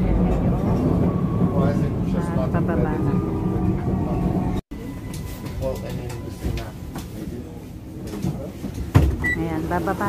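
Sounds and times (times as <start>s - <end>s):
metro train rumbling: 0.0s - 10.0s.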